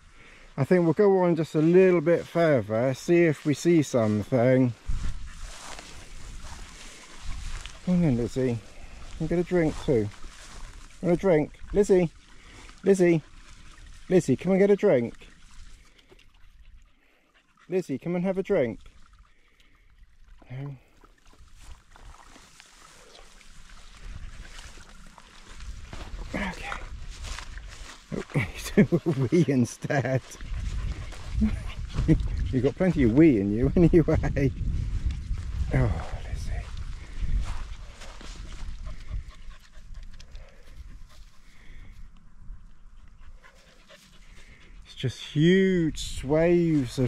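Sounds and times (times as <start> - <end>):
footsteps through long grass: 1.4 - 14.2, 15.2 - 16.0, 20.9 - 42.1
wind rumbling on microphone: 4.1 - 12.6, 23.5 - 29.2, 30.2 - 44.9
dog panting rapidly: 16.3 - 17.7, 30.2 - 33.2, 38.6 - 41.6, 42.9 - 45.0.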